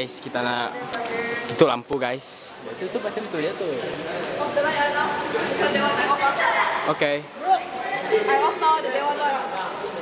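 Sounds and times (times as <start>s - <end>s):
chatter of people in echoing hall: 0.0s - 10.0s.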